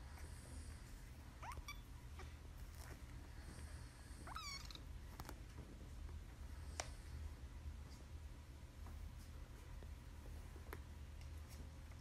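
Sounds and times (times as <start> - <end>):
low steady hum: 0.0 - 12.0
kitten mewing: 4.2 - 4.9.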